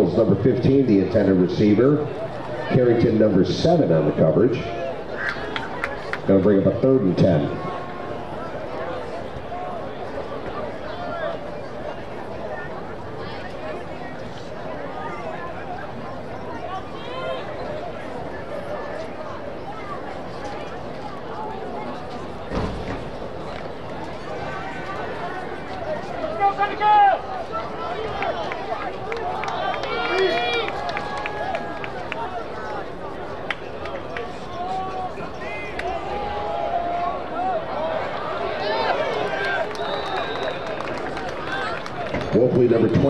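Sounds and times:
crowd shouting: 7.2 - 13.9, 24.0 - 42.2
thump: 22.5 - 23.1.

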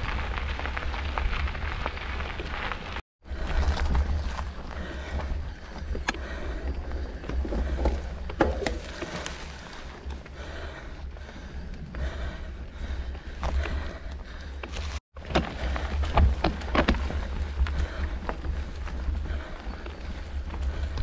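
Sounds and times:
tyres on loose stones: 0.0 - 10.4, 13.3 - 21.0
bike clicks and knocks: 5.0 - 10.4.

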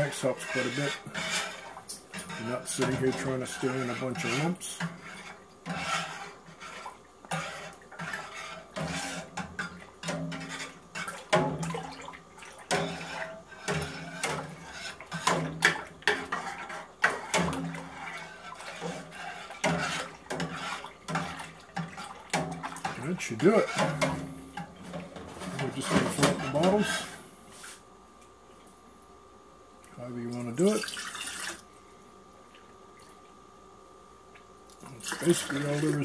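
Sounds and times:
liquid swishing: 0.0 - 23.9.

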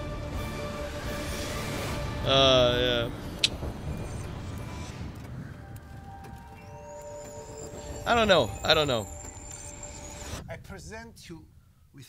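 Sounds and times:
low rumble: 2.2 - 12.0
thin high rising tone: 2.3 - 11.7.

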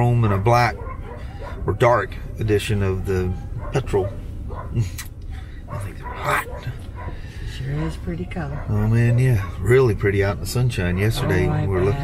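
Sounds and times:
low steady rumble: 0.0 - 12.0
dog barking: 0.4 - 2.0, 2.8 - 4.9, 5.6 - 7.3, 8.2 - 9.8, 11.0 - 12.0.

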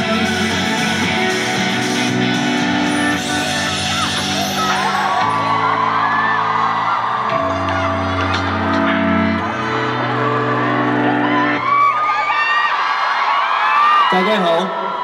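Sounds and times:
pop ballad held chords: 0.0 - 11.9
fans screaming and cheering: 0.0 - 15.0.

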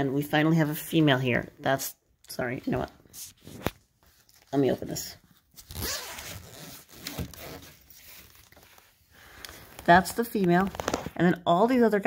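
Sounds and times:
zipper being unzipped: 5.6 - 7.8.

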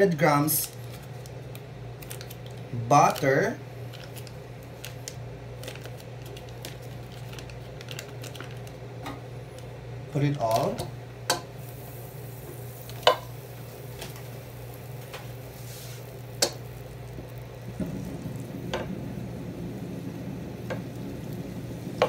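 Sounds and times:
butter sizzling in a pot: 11.3 - 22.0.

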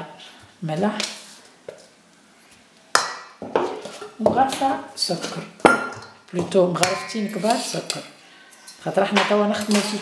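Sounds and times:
metal spoon clinking on steel bowl: 6.8 - 7.6.

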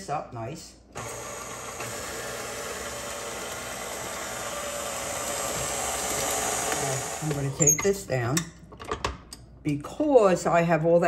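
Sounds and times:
stand mixer running: 1.0 - 7.5.

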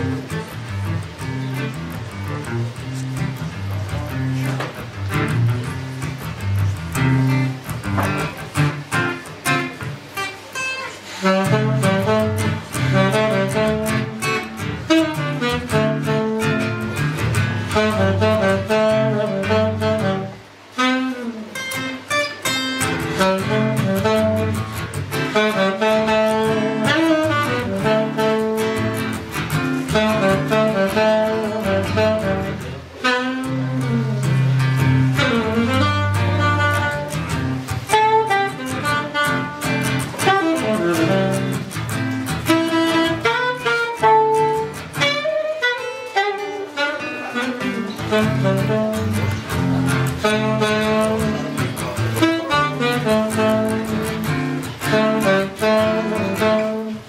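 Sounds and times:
acoustic guitar accompaniment: 0.0 - 57.0
saxophone jazz melody: 0.0 - 57.0.

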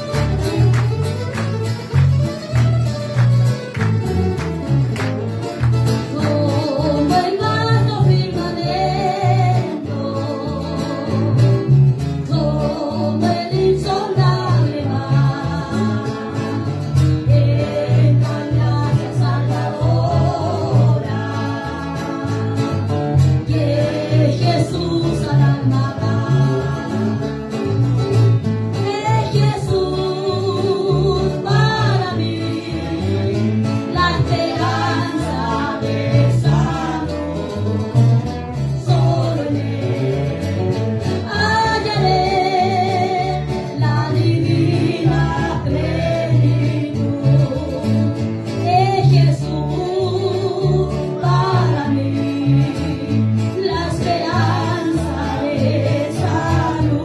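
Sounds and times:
strummed acoustic guitar: 0.0 - 57.0
woman singing with vibrato: 6.0 - 22.8, 23.4 - 27.7, 28.8 - 38.0, 38.6 - 57.0.

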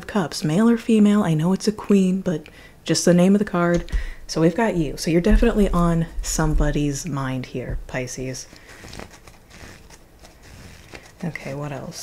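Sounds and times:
cards rustling while shuffled: 8.4 - 12.0.

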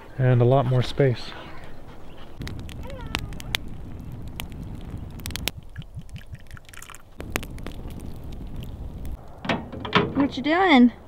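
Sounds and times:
campfire crackling: 1.6 - 9.5
low rumble: 2.4 - 6.4, 7.1 - 9.5
fire pops: 2.4 - 10.0.

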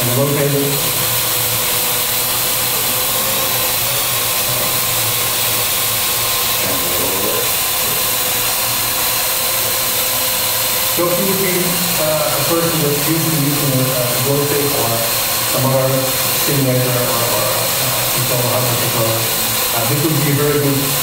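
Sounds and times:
drone rotors buzzing: 0.0 - 21.0.

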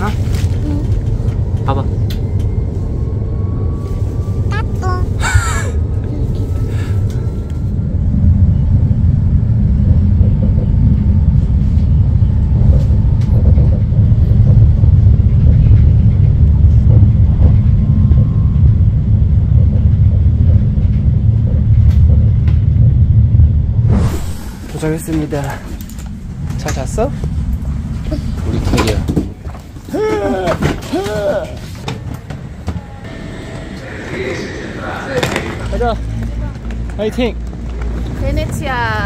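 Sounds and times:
train rumbling from inside carriage: 0.0 - 39.0.

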